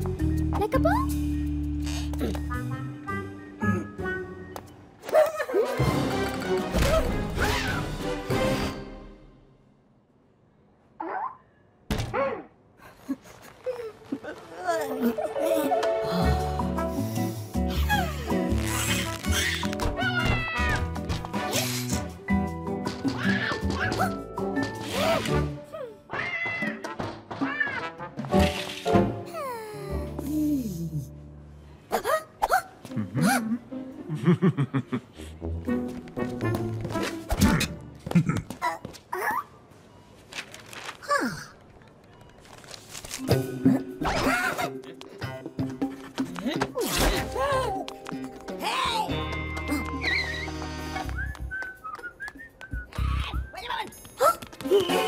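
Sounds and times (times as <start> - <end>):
cartoon background music: 0.0 - 9.4, 14.8 - 31.3, 43.2 - 53.9.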